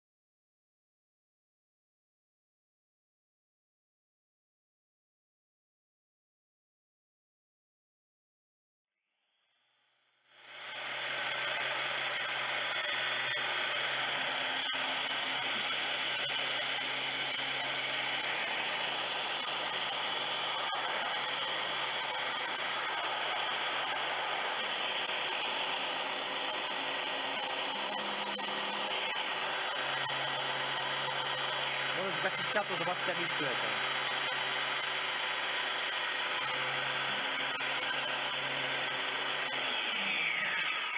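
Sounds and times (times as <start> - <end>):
chain sharpener motor and grinding: 10.2 - 40.9.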